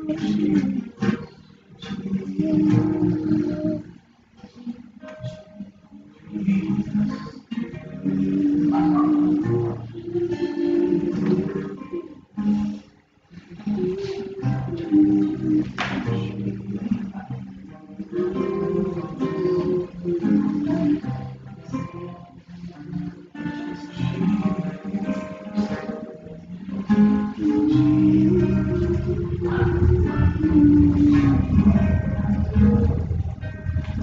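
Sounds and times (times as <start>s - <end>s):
acoustic guitar strumming chords: 0.0s - 34.0s.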